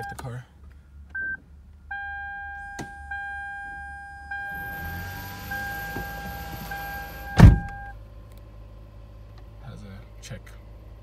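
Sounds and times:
dashboard warning chime: 1.2s - 8.0s
loud thump: 7.3s - 7.8s.

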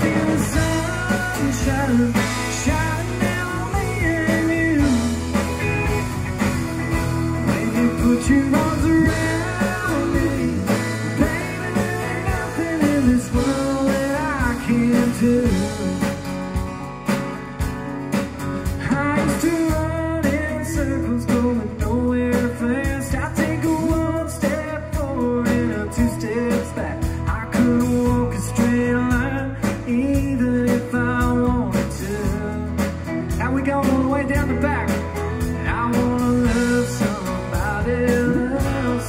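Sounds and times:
country band playing: 0.0s - 39.0s
steady drum beat: 0.0s - 39.0s
strummed acoustic guitar: 0.0s - 39.0s.

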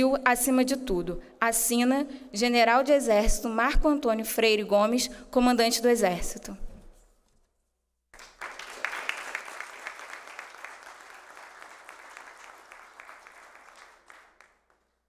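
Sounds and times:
audience applauding: 8.2s - 15.0s.

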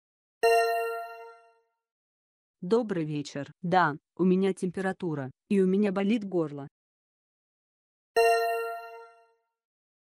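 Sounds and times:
bell-like chime: 0.4s - 1.7s, 8.2s - 9.5s.

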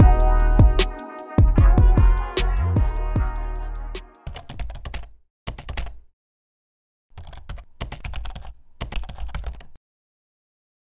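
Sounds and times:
keyboard typing clicks: 4.2s - 6.0s, 7.2s - 9.8s.

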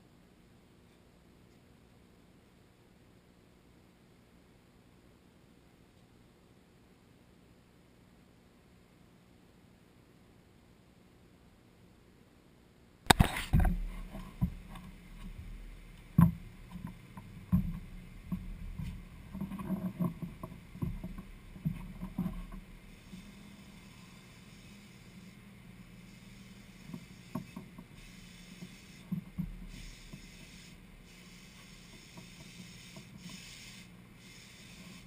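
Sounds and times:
power grinder hissing: 22.8s - 35.0s.

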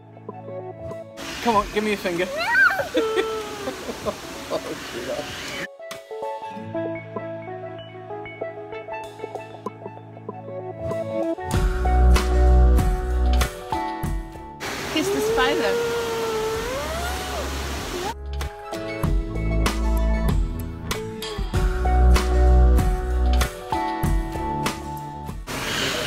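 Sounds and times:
background hiss: 1.2s - 5.7s
child's drawn-out vocal sound: 2.3s - 3.8s, 15.0s - 18.2s.

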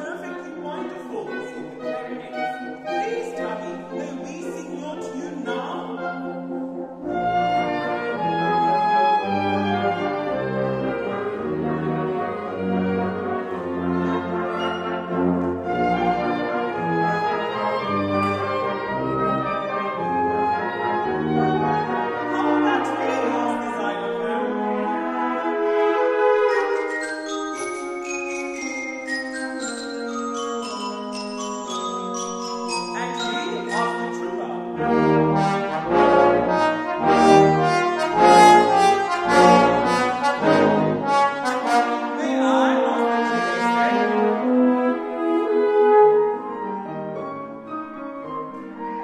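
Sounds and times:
tuba melody: 0.0s - 49.0s
wind band playing: 0.0s - 49.0s
bell-like struck notes: 26.5s - 34.8s.

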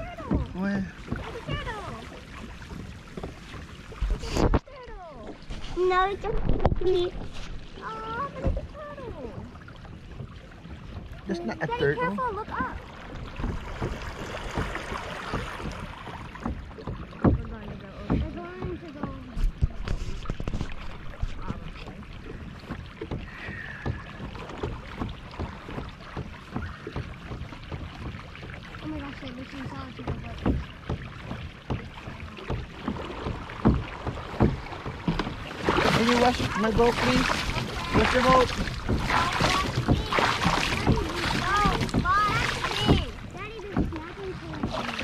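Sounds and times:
water lapping against kayak: 0.0s - 45.0s
sharp knocks and taps: 29.7s - 35.4s, 37.6s - 45.0s.

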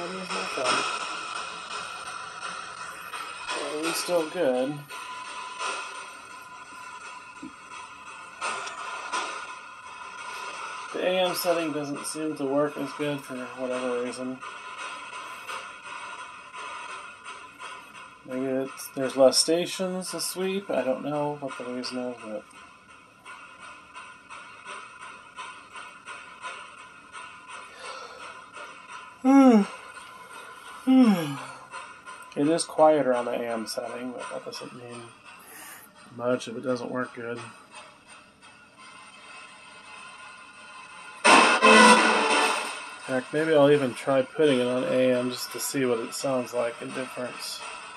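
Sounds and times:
radio static hiss: 0.0s - 5.8s
snatches of broadcast sound: 41.1s - 47.7s.

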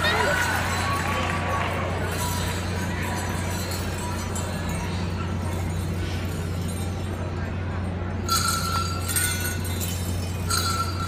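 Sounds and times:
indistinct voices in arena: 0.0s - 11.0s
steady low hum: 0.0s - 11.0s.

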